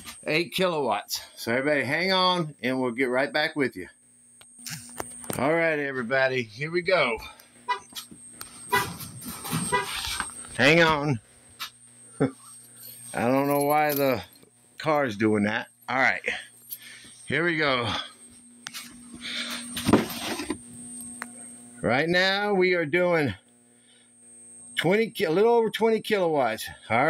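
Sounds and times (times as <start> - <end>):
electrical hum: 0.0 - 27.0
car horn tooting: 8.7 - 9.0, 9.6 - 10.0.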